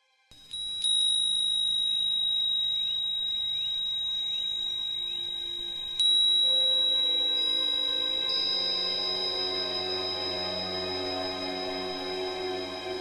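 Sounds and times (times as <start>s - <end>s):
high pure-toned chime ringing: 0.4s - 13.0s
low soft ringing tones: 0.4s - 13.0s.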